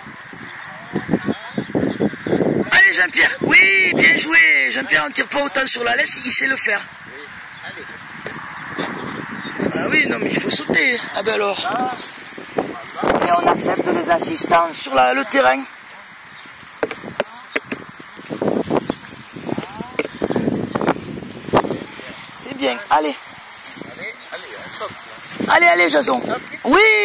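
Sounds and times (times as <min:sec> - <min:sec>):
background voices talking: 0:00.0 - 0:27.0.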